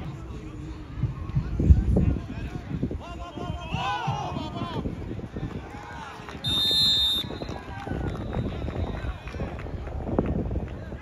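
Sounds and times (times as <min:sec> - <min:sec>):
indistinct chatter of voices: 0:00.0 - 0:06.6.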